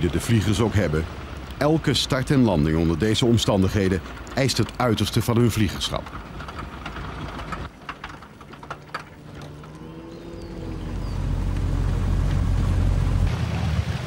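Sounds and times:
motorboat engine humming: 0.0 - 14.0
water noise: 0.0 - 14.0.

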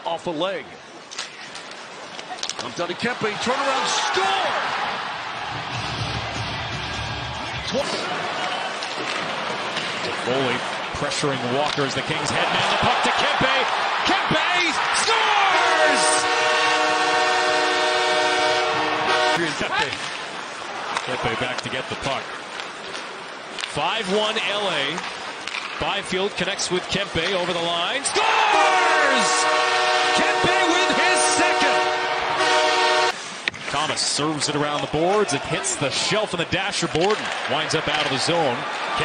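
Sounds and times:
crowd cheering: 2.4 - 22.4, 26.7 - 33.2, 34.2 - 39.0
arena goal horn blast: 15.5 - 19.8, 28.5 - 33.2.

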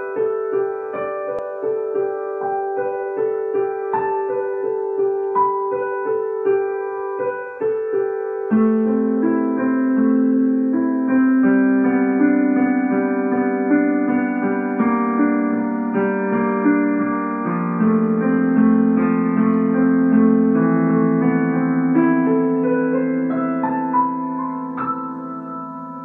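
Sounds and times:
child playing piano: 0.0 - 26.0.

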